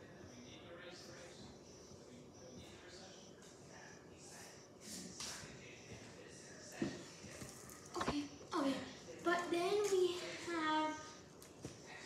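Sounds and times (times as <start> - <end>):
faint indistinct speech: 0.0 - 12.0.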